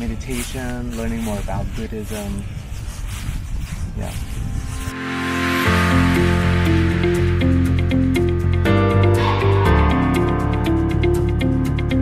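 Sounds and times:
wind buffeting microphone: 0:00.0 - 0:05.0.

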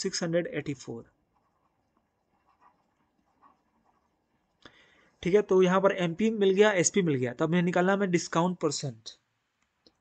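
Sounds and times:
stylus tapping and scratching: 0:01.1 - 0:04.6.

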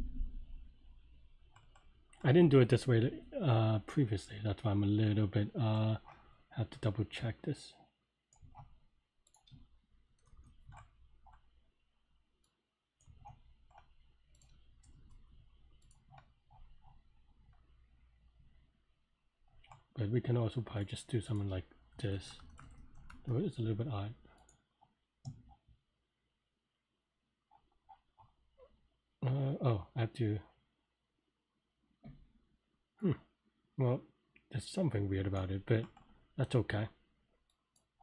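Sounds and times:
computer clicks: 0:01.4 - 0:02.3, 0:08.3 - 0:11.6, 0:12.4 - 0:17.6, 0:21.3 - 0:23.4, 0:24.4 - 0:24.6
mouse and keyboard clicks: 0:13.0 - 0:17.7.

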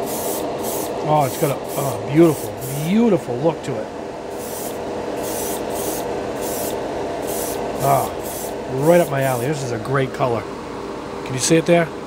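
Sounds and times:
airbrush spraying bursts: 0:00.0 - 0:02.9, 0:04.3 - 0:09.6
exhaust fan hum: 0:00.0 - 0:12.0.

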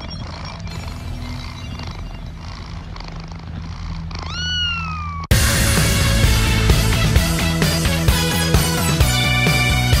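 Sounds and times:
low droning hum: 0:00.0 - 0:05.3
cat meowing: 0:04.0 - 0:05.3.

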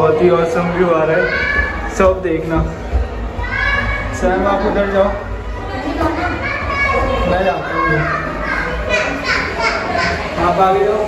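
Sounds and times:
excited voices calling out: 0:03.2 - 0:11.0.

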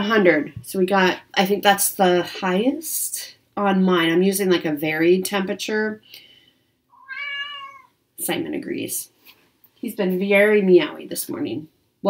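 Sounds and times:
cat meowing: 0:06.9 - 0:07.9.

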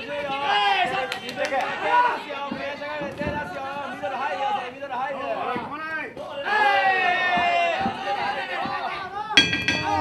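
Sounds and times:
sharp ringing strike: 0:09.4 - 0:10.0.

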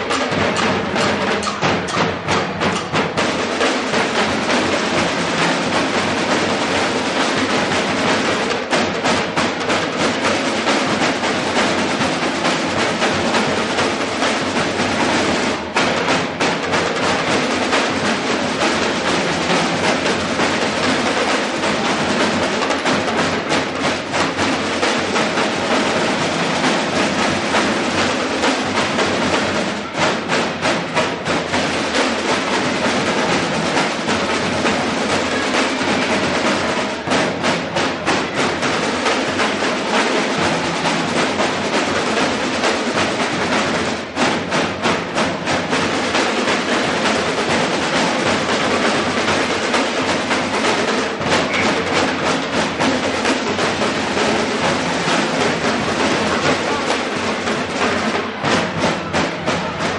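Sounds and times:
marching snare drums: 0:00.0 - 0:59.9.

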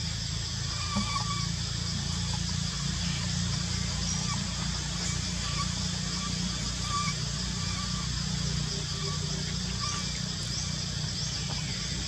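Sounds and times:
insects hissing: 0:00.0 - 0:12.0
low steady rumble: 0:00.0 - 0:12.0.

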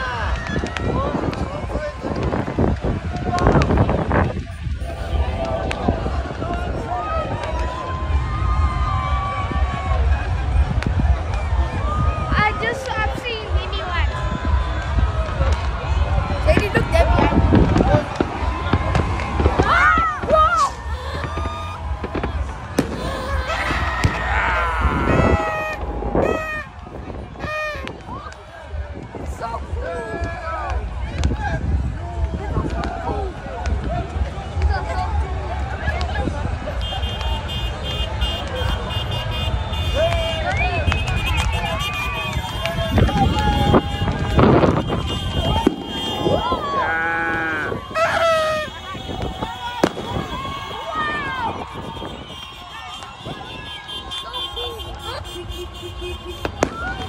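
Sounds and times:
crowd voices: 0:00.0 - 0:57.0
firecrackers cracking: 0:14.7 - 0:28.5, 0:32.2 - 0:57.0
loud rising and falling shouts: 0:16.4 - 0:28.8, 0:41.5 - 0:55.2.

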